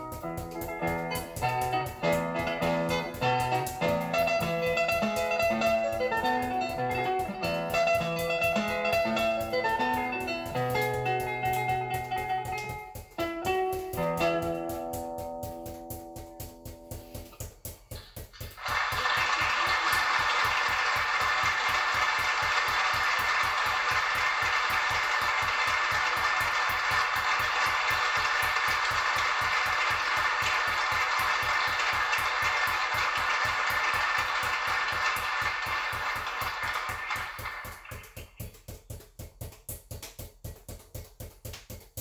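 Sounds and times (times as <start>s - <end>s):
guitar notes: 0.0s - 17.6s
background music: 0.0s - 38.0s
juggling balls bouncing: 0.0s - 42.0s.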